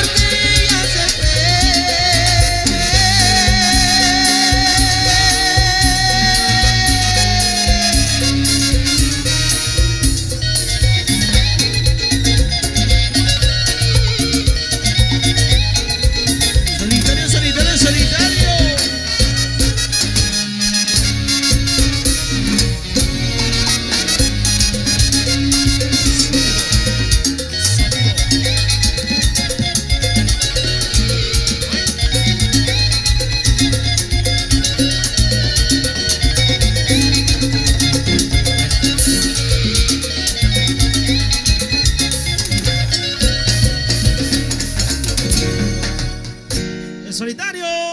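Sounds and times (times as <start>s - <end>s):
strong bass line: 0.0s - 46.7s
cumbia band playing live: 0.0s - 47.9s.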